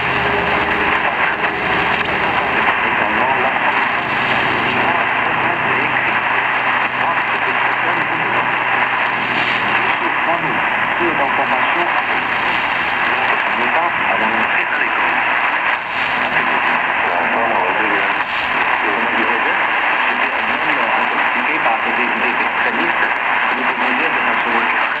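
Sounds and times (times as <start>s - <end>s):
loud static hiss: 0.0s - 25.0s
weak voice on shortwave radio: 0.0s - 25.0s.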